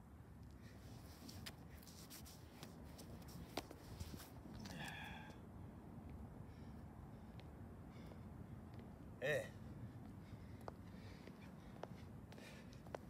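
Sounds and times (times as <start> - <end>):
shoes scuffing on concrete: 1.0 - 4.7, 10.0 - 13.0.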